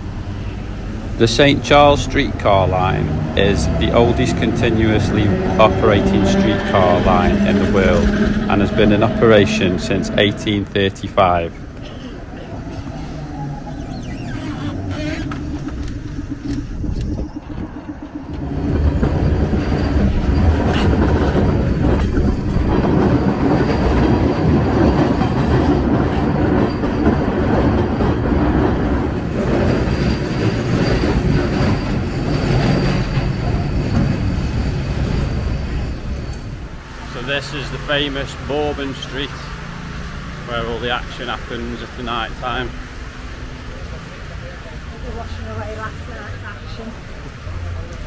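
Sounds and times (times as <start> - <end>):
streetcar rumbling on rails: 0.0 - 48.0
low hum: 2.3 - 23.1.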